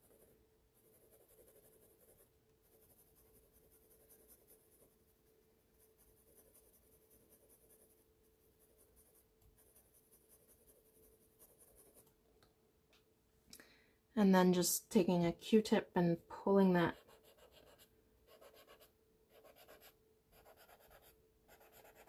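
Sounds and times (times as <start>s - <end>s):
pencil scratching on paper: 0.0s - 12.1s, 16.8s - 22.0s.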